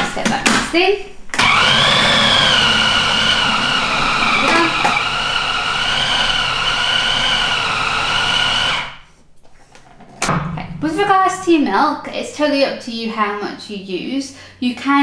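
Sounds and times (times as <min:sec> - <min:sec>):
food processor motor whine: 0:01.4 - 0:09.0.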